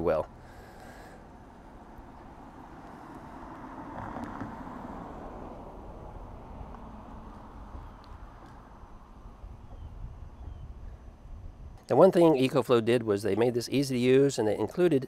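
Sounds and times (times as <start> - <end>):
wind on microphone: 3.4 - 11.8.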